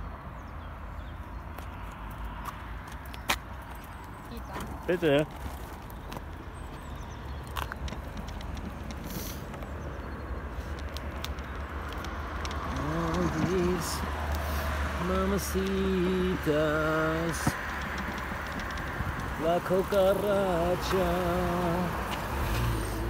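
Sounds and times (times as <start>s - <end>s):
wind and tyre rumble: 0.0s - 23.0s
man singing wordless tune: 12.7s - 17.6s, 19.4s - 22.4s
light rattling clicks: 16.5s - 22.3s.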